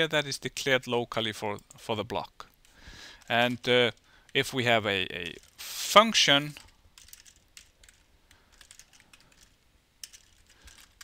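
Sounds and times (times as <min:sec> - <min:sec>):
faint keyboard typing: 0:02.4 - 0:05.6, 0:06.4 - 0:11.0.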